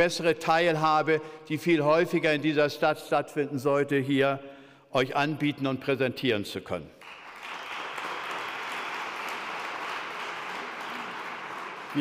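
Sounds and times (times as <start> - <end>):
large audience applauding: 7.0 - 12.0.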